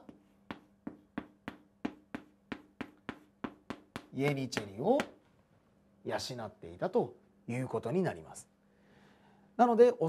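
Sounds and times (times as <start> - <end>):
chalk tapping on blackboard: 0.0 - 5.2.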